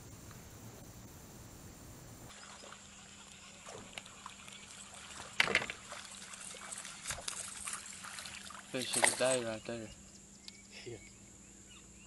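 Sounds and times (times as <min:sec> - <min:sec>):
water sounds: 0:00.0 - 0:09.8.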